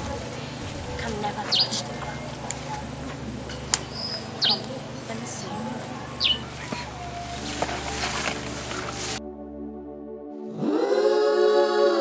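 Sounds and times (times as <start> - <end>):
insects trilling: 0.0 - 9.2
sharp tick: 3.5 - 3.9.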